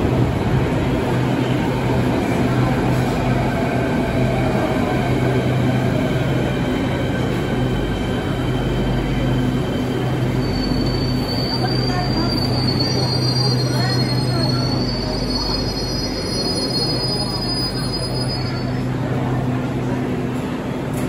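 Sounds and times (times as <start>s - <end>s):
train low hum: 0.0s - 21.0s
high-pitched wheel squeal: 10.4s - 18.8s.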